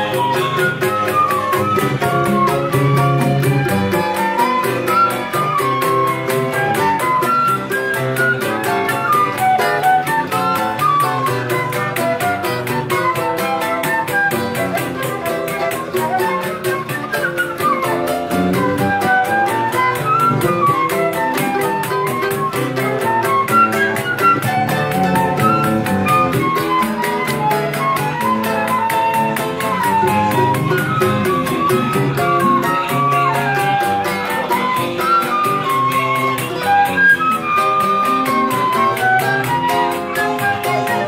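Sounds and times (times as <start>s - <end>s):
acoustic guitars strummed and plucked: 0.0s - 41.0s
flute melody: 0.0s - 41.0s.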